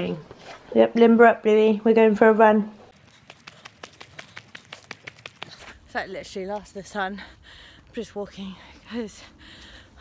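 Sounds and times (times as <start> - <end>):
footsteps running on dirt: 2.9 - 6.8
woman speaking: 5.8 - 7.3, 7.9 - 9.3.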